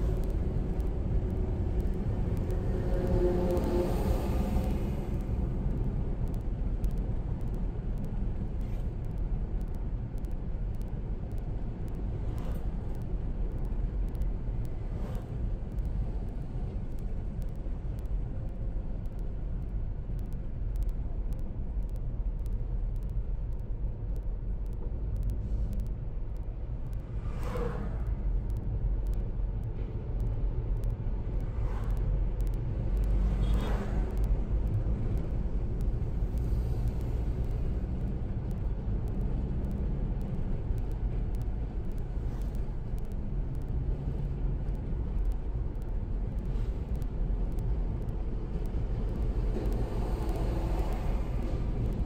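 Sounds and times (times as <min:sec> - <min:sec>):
vehicles passing: 0:00.0 - 0:09.4, 0:26.7 - 0:52.0
car cabin road rumble: 0:00.0 - 0:52.0.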